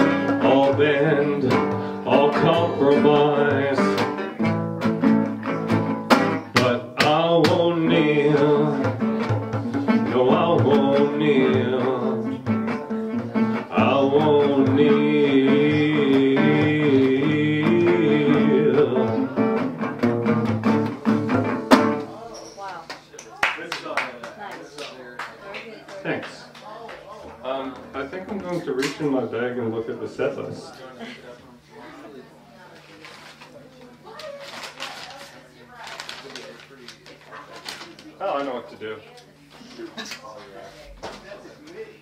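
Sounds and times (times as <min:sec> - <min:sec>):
resonator guitar chords: 0:00.0 - 0:22.2.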